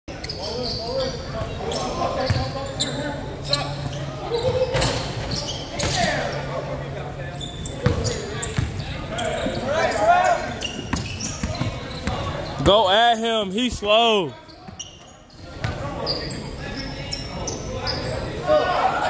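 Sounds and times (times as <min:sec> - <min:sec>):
sneakers squeaking: 0:00.1 - 0:18.8
players calling out: 0:09.0 - 0:14.6.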